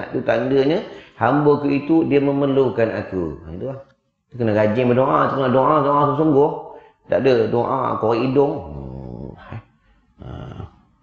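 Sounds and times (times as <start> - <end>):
man murmuring filler sounds: 8.4 - 9.6, 10.2 - 10.7.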